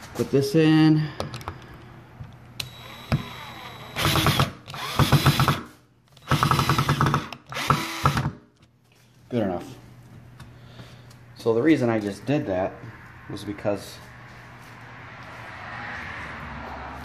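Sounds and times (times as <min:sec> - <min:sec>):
power drill driving screw into wood: 0:02.6 - 0:08.4.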